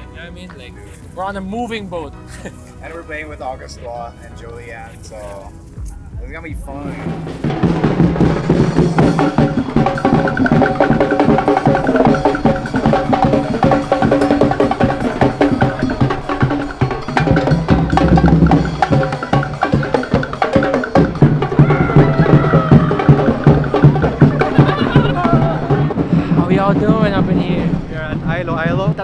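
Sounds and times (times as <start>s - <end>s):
drum-led percussion music: 0.0s - 29.0s.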